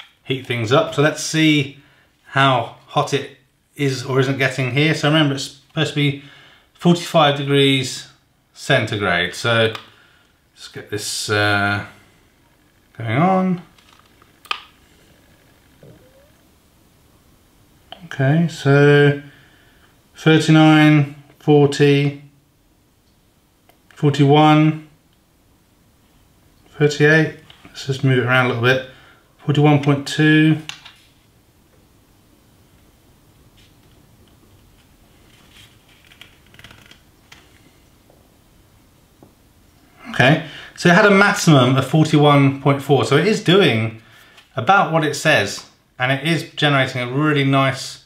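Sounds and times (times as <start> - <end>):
soft handling rustles: 32.8 - 38.3.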